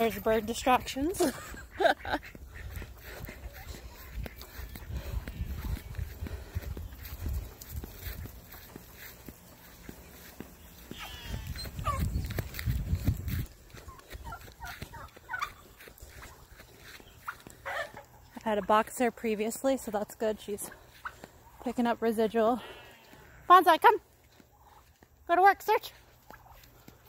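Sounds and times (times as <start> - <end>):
chickens clucking: 0.0 - 25.2, 25.9 - 27.0.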